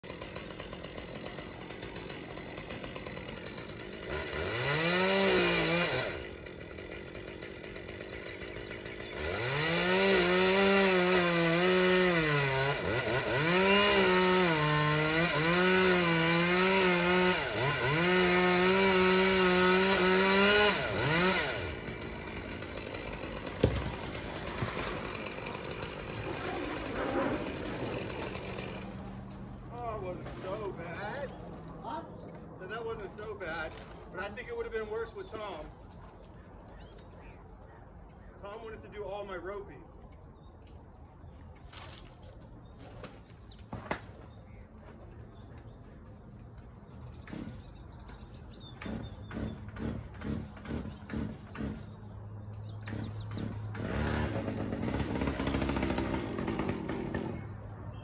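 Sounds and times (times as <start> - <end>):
chainsaw cutting: 0.0 - 31.7, 32.6 - 36.0, 46.6 - 48.2, 48.8 - 57.8.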